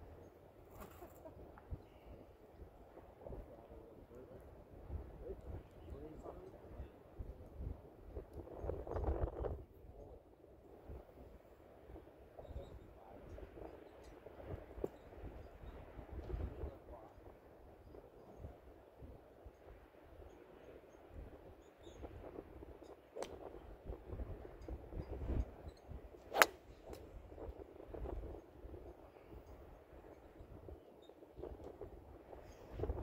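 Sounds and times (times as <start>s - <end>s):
low wind rumble on microphone: 1.4s - 33.0s.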